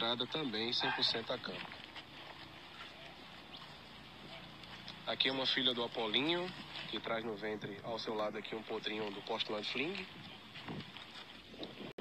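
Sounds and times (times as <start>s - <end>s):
soft hoof steps on dirt: 0.0s - 11.9s
rustling of horses moving: 0.0s - 12.0s.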